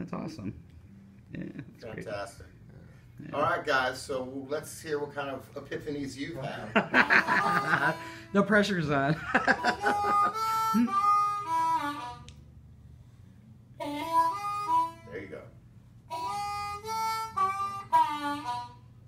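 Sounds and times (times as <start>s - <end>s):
blues harmonica bending notes: 7.0s - 8.4s, 9.5s - 12.6s, 13.8s - 19.0s.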